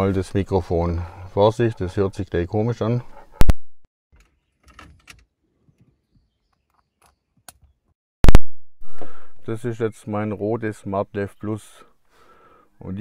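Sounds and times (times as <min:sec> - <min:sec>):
microphone jack pops: 0:03.4 - 0:03.8, 0:08.2 - 0:09.2.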